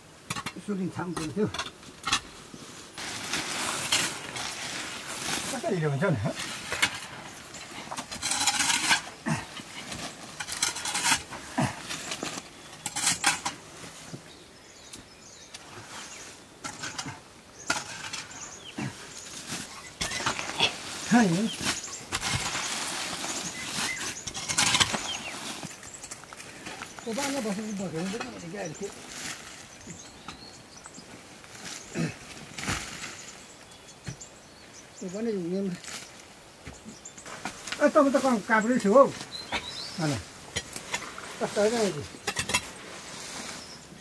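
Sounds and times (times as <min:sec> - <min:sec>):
scraping and flinging wet dung: 0:02.2 - 0:14.0, 0:15.6 - 0:30.2.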